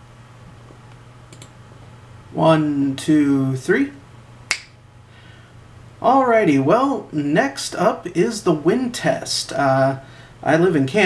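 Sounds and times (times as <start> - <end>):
sharp click: 1.3 - 1.6, 4.5 - 4.8.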